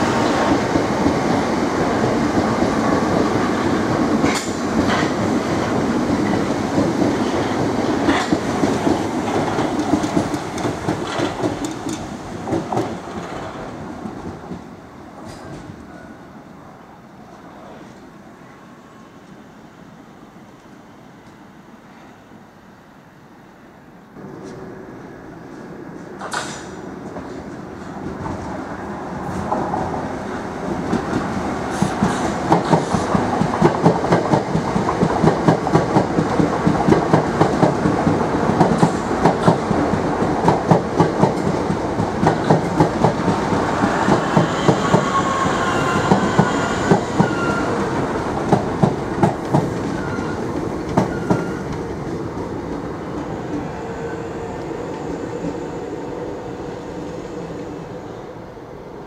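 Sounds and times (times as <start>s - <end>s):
electric train running past: 0.0s - 59.0s
train wheel squeals: 43.7s - 48.0s, 49.9s - 51.8s.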